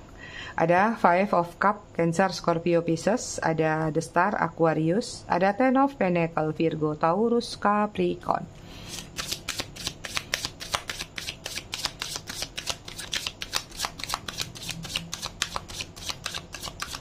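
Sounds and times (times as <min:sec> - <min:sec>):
cards being shuffled: 0:08.8 - 0:17.0.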